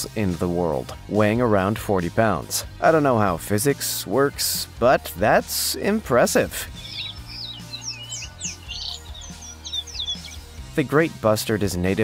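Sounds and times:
low background music: 0:00.0 - 0:12.0
small birds chirping: 0:06.6 - 0:10.7.

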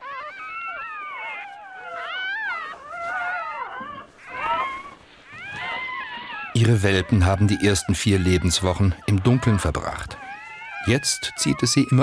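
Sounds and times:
fox cubs whining and mewing: 0:00.0 - 0:12.0.

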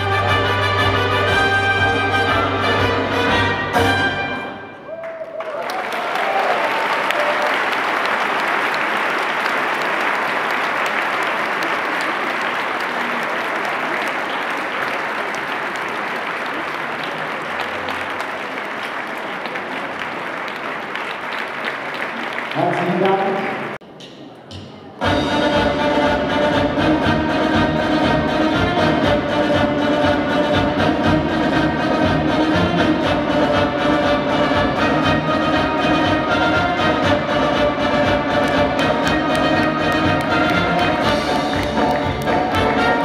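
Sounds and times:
orchestral paso doble with brass: 0:00.0 - 0:04.9, 0:25.0 - 0:43.0
audience applause: 0:04.8 - 0:23.8, 0:38.0 - 0:43.0.

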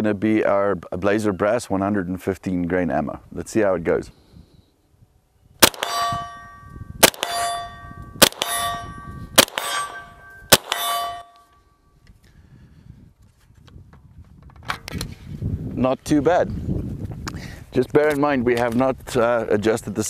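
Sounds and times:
gunshots: 0:05.6 - 0:06.4, 0:07.0 - 0:11.2
steel target clang: 0:05.6 - 0:11.5.

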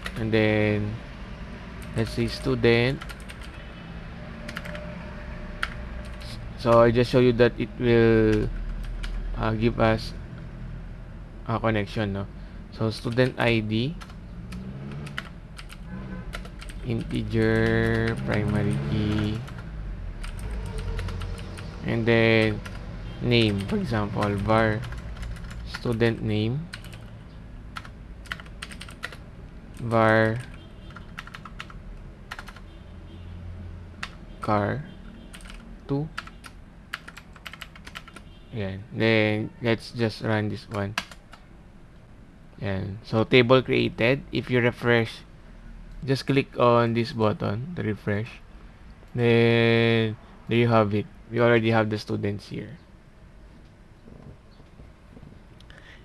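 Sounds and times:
computer keyboard typing: 0:00.0 - 0:00.3, 0:01.8 - 0:03.6, 0:04.4 - 0:04.9, 0:05.6 - 0:06.9, 0:08.2 - 0:09.2, 0:13.0 - 0:29.2, 0:29.8 - 0:32.6, 0:35.3 - 0:38.2, 0:40.7 - 0:41.4.

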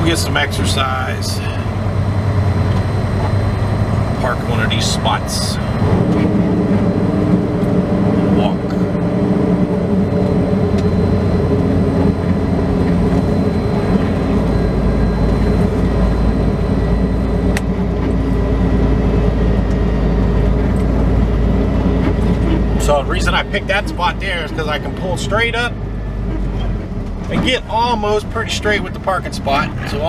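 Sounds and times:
deep low rumble: 0:00.0 - 0:30.0
truck diesel engine running: 0:00.0 - 0:30.0.

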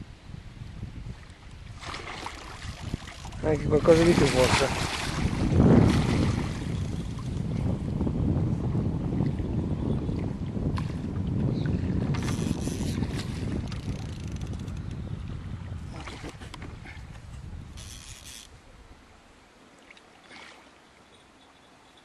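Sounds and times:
wind rumble on microphone: 0:00.0 - 0:19.3.

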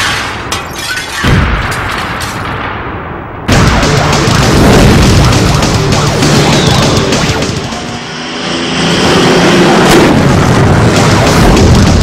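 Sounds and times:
music: 0:03.5 - 0:08.0, 0:10.7 - 0:12.0.

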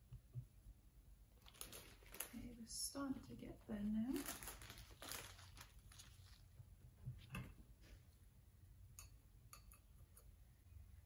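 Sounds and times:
plastic bag crinkling: 0:01.4 - 0:06.6.

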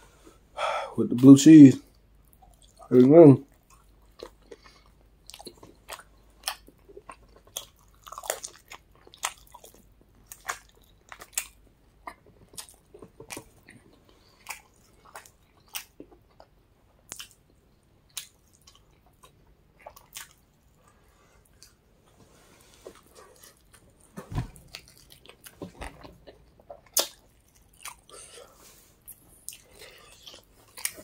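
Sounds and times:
person chewing crunchy food: 0:02.3 - 0:02.9, 0:03.5 - 0:21.8, 0:22.6 - 0:31.0.

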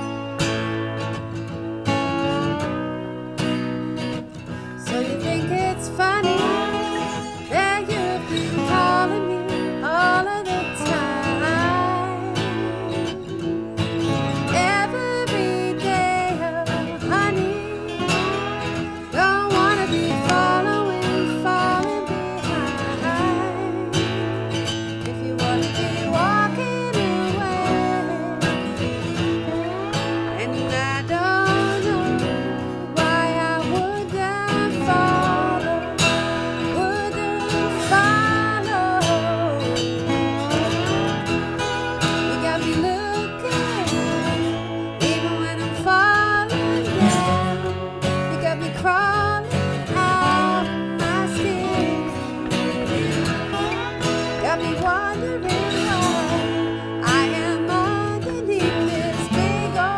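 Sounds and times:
acoustic guitar strumming: 0:00.0 - 0:59.9
slide guitar melody: 0:00.0 - 0:59.9.

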